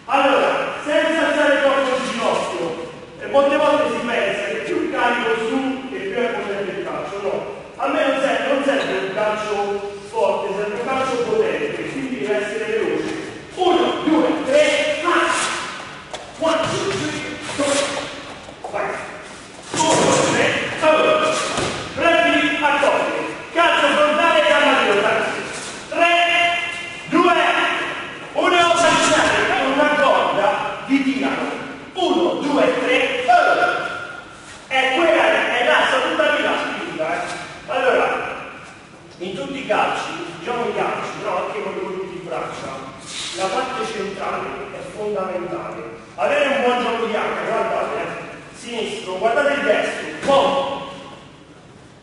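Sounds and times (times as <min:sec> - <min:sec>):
men's voices: 0:00.0 - 0:19.1, 0:19.7 - 0:34.0
man speaking: 0:00.0 - 0:51.2.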